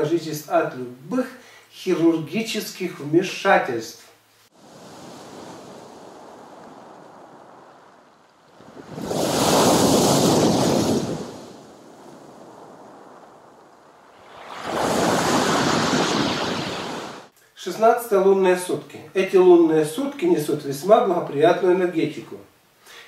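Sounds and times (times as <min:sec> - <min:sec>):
surf surging against pier: 0:04.6 - 0:17.3
waves breaking on pebbles: 0:04.6 - 0:17.3.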